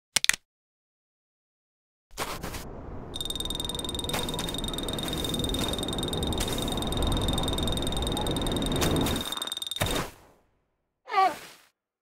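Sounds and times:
steady high whine: 3.2 - 9.8
croaking rasping buzz: 3.2 - 9.9.

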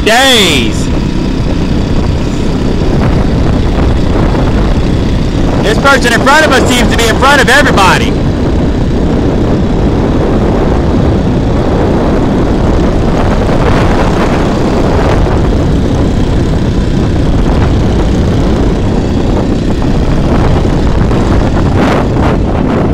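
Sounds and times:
wind rushing over microphone: 0.0 - 22.9
small bicycle engine running: 0.1 - 22.9.

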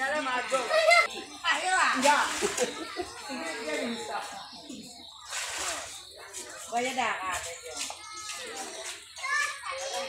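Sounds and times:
children's voices: 0.0 - 10.0
people talking indistinctly: 0.0 - 10.0.

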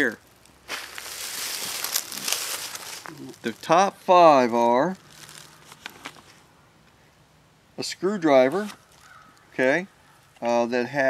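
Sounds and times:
sharp crackles: 0.0 - 6.4, 8.6 - 9.5
camera handling rustle: 5.1 - 6.4.

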